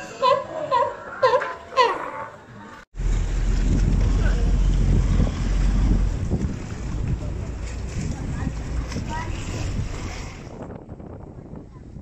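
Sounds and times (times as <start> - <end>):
wind buffeting microphone: 3.0 - 12.0.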